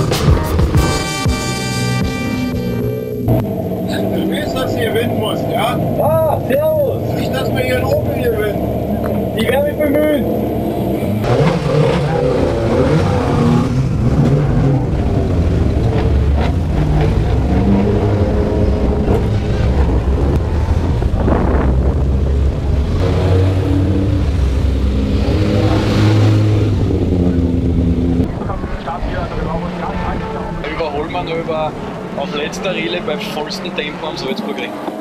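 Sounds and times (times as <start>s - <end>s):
race car engines revving: 0.0s - 35.0s.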